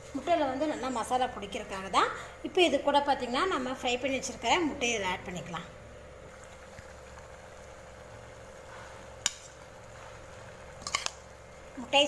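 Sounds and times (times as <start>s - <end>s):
steady low hum: 0.0s - 12.0s
gravy boiling in a pan: 3.2s - 12.0s.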